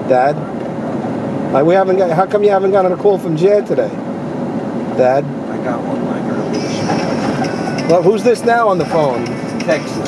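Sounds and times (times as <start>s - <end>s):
road noise: 0.0s - 10.0s
vehicle engine noise: 0.0s - 10.0s.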